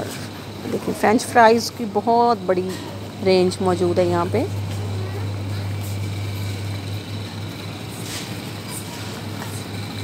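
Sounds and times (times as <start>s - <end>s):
freezers humming: 0.0s - 10.0s.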